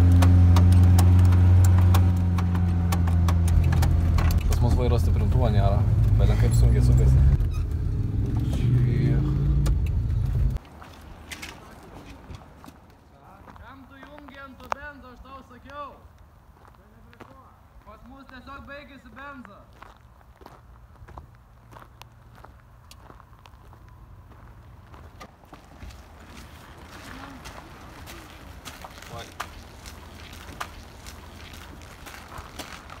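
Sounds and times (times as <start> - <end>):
van engine and road noise: 0.0 - 13.8, 20.0 - 33.0
footsteps on snow: 19.7 - 33.0.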